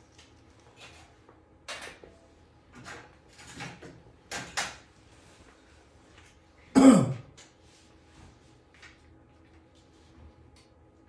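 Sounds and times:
person clearing throat: 6.7 - 7.3.

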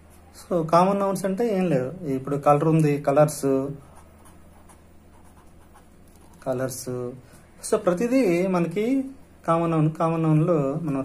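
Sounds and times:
pen writing on paper: 3.8 - 6.4.

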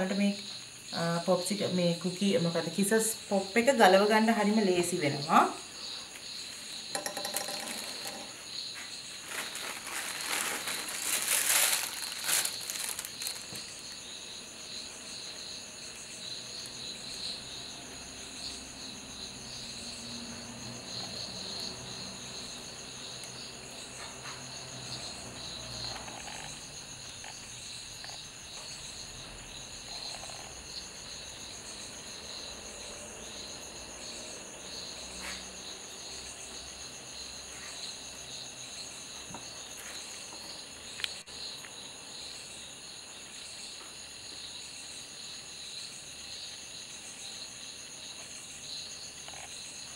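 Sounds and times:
insects chirring: 0.0 - 49.9.

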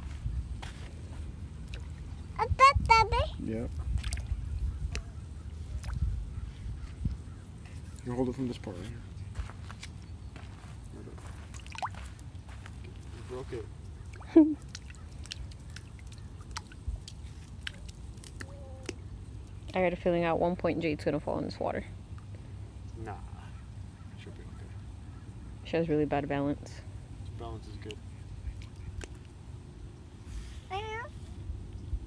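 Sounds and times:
wind rumble on microphone: 0.0 - 7.8, 31.3 - 32.0
stick splashing in water: 4.0 - 4.3, 11.5 - 12.0, 14.1 - 19.0
toddler's high-pitched vocal sound: 18.4 - 18.9, 30.7 - 31.2.

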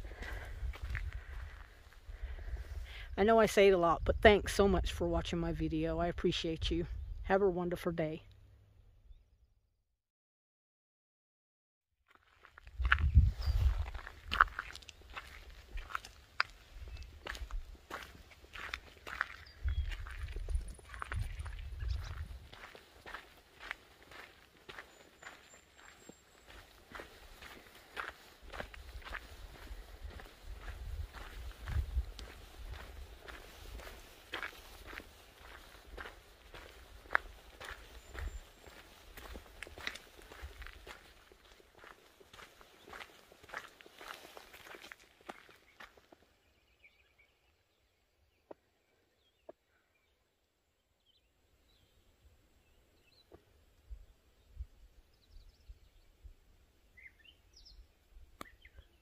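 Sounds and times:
footsteps crunching on gravel: 0.0 - 2.0, 12.1 - 46.2.

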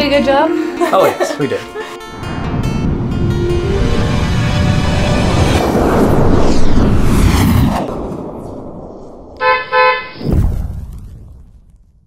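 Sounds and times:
loud low rumble: 2.1 - 9.4
low boom: 2.2 - 12.0
vehicle horn honking: 9.4 - 10.2.

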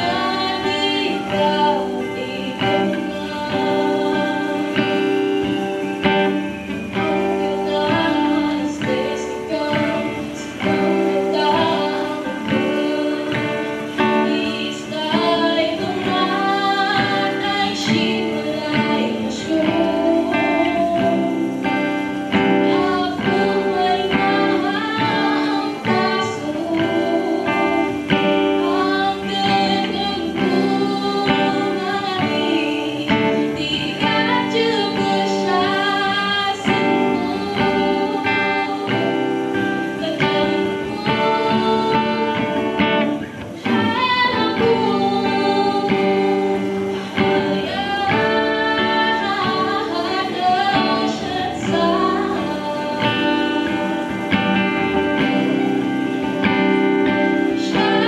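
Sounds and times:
acoustic guitar strumming: 0.0 - 58.0
woman singing: 0.0 - 58.0.

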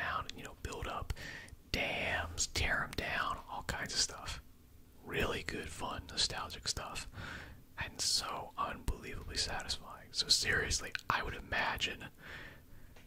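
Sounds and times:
man whispering: 0.0 - 4.4, 5.0 - 7.1, 7.8 - 12.2.

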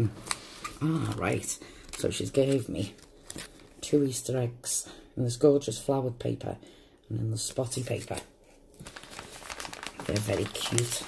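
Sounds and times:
plastic sleeve crinkling: 0.1 - 3.8, 7.5 - 11.0.

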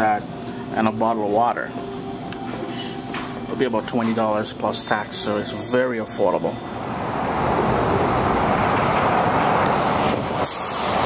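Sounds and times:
road traffic passing: 6.6 - 11.0.

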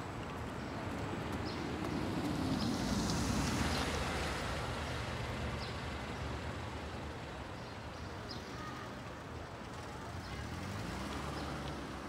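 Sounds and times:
low rumble of traffic: 0.0 - 12.0
car passing close by: 1.6 - 6.0, 9.7 - 12.0.

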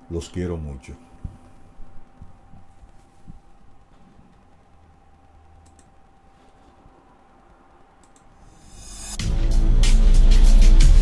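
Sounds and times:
low electrical hum: 0.0 - 10.1
faint clicks: 1.4 - 8.4.

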